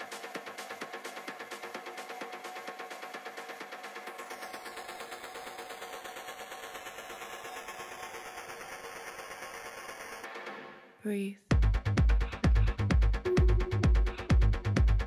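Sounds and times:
pulsing techno synth: 0:12.5 - 0:15.0.

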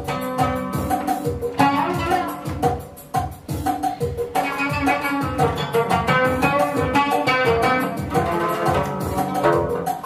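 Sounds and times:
oud melody: 0:00.0 - 0:10.0
steady low beat: 0:00.0 - 0:10.0.

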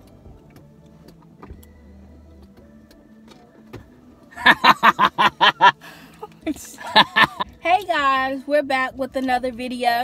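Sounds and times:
faint music with ticking beat: 0:00.0 - 0:10.0.

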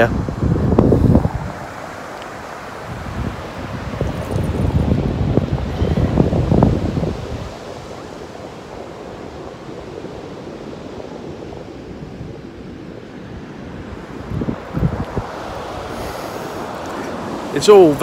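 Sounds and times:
surf on sandy beach: 0:00.0 - 0:18.0
wind buffeting microphone: 0:00.0 - 0:18.0.

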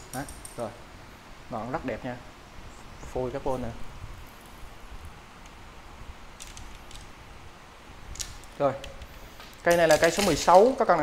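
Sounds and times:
person speaking: 0:03.0 - 0:03.9, 0:09.6 - 0:11.0.

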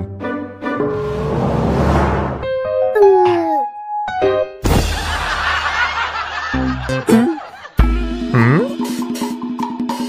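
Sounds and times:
cartoon music: 0:02.9 - 0:03.9, 0:06.8 - 0:09.0.

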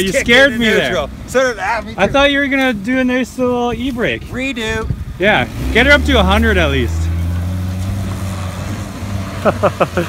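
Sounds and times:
car engine running: 0:04.5 - 0:10.0
bursts of laughter: 0:09.4 - 0:10.0.

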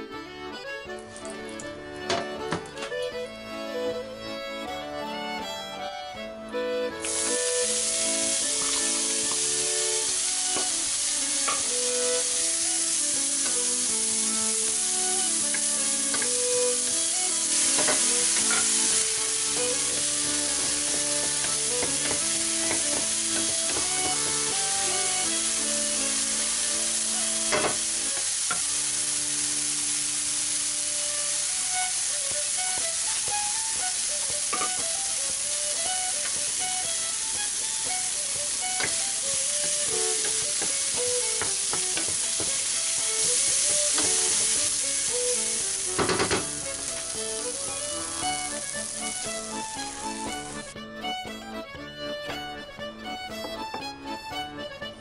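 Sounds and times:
accordion background music: 0:00.0 - 0:55.0
onion sizzling in frying pan: 0:07.0 - 0:50.6
sharp knocks: 0:46.0 - 0:46.5.

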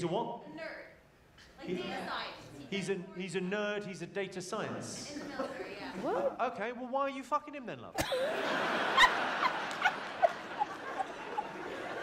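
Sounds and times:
audience laughing: 0:08.0 - 0:12.0.

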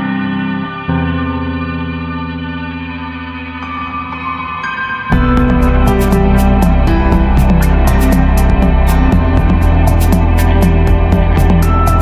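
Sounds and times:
held chord with echo: 0:00.0 - 0:12.0.

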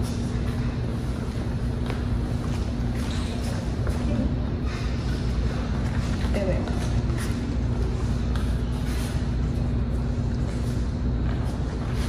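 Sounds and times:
constant low hum: 0:00.0 - 0:12.0
low room rumble: 0:00.0 - 0:12.0.

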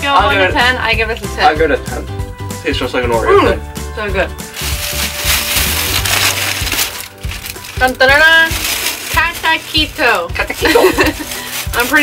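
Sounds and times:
plastic bag rustling and crinkling: 0:04.5 - 0:12.0.

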